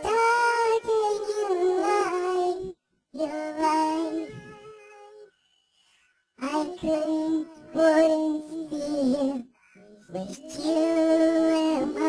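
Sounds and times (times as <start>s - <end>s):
high singing voice: 0.0s - 12.0s.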